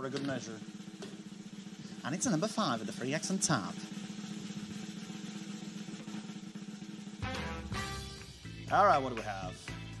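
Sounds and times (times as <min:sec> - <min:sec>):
snare drum roll: 0:00.0 - 0:09.6.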